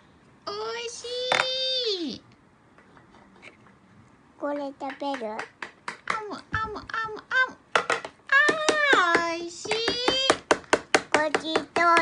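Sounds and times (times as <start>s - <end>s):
child singing: 11.2s - 12.0s.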